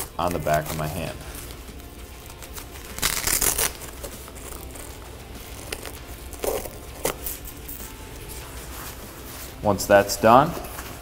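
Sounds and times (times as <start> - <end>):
velcro straps ripping open: 0.0 - 9.0.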